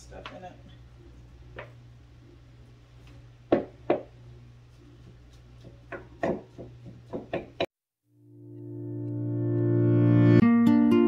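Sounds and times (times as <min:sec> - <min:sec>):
wooden spoon knocking against bowl: 0:03.5 - 0:04.1, 0:05.6 - 0:07.7.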